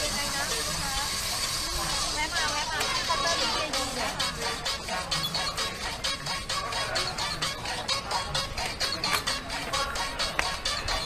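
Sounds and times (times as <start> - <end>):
woman speaking: 2.0 - 4.2.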